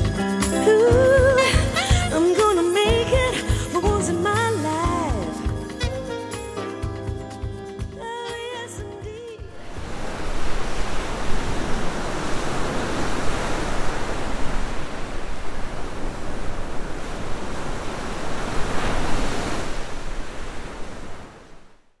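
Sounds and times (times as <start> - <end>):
waves breaking: 7.4 - 21.9.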